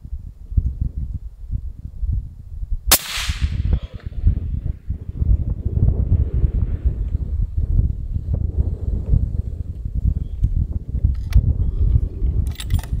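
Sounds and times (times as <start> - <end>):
gunshot echo: 2.9 - 4.3
suppressed rifle shot: 2.9 - 4.7.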